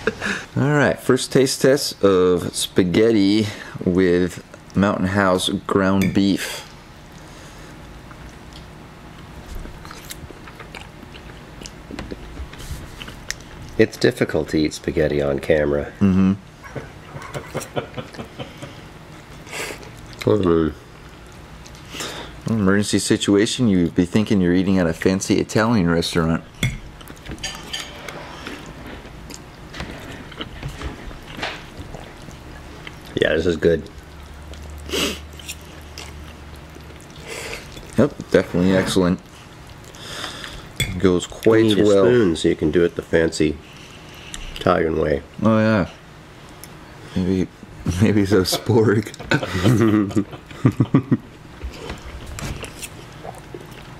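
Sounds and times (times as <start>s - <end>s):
low room hum: 0.0s - 53.9s
faint chewing: 7.9s - 13.8s, 19.1s - 22.5s, 26.9s - 41.6s.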